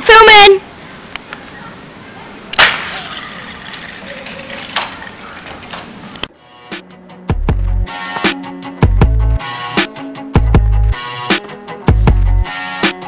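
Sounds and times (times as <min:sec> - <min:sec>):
outdoor background noise: 0:00.0 - 0:13.0
music with drum beat: 0:06.7 - 0:13.0.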